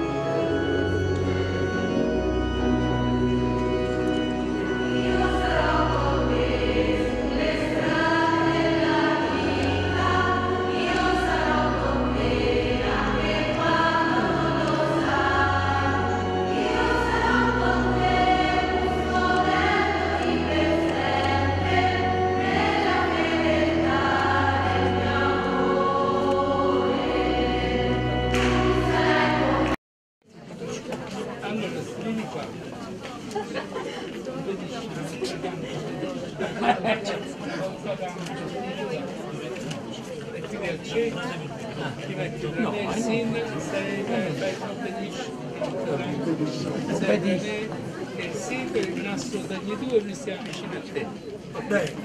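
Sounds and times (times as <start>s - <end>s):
choir singing a hymn: 0.0s - 29.8s, 42.3s - 48.9s
instrumental accompaniment low bass notes: 0.0s - 29.8s
crowd chatter: 0.0s - 52.0s.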